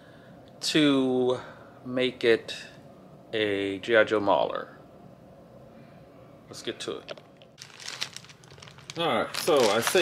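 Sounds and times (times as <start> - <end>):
packaging crinkling: 7.1 - 10.0.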